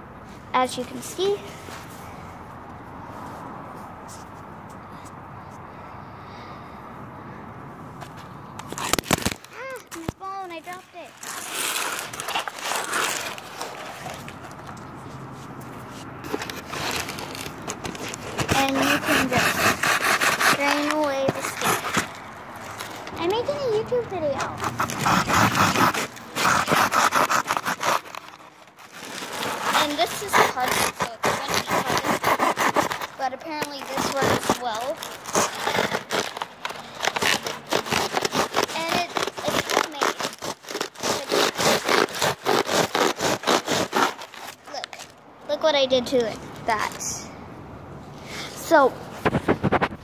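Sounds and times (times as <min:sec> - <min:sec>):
phone rustling and scraping: 0:07.9 - 0:45.2, 0:48.7 - 0:50.0.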